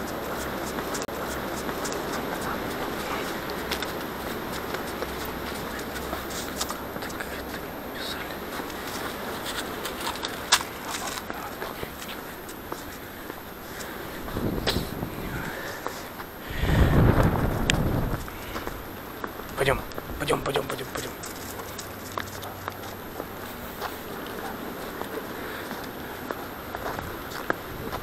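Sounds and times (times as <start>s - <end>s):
footsteps crunching on snow: 0.0s - 28.0s
rustling against camera: 0.0s - 28.0s.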